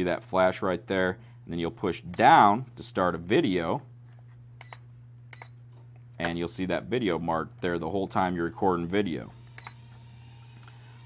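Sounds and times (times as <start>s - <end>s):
short high-pitched electronic beeps: 5.4s - 5.6s.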